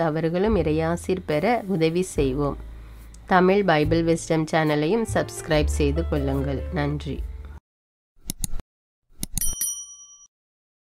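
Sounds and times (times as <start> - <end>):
mouse clicks: 8.2 - 8.6
bright bell ding: 9.4 - 10.3.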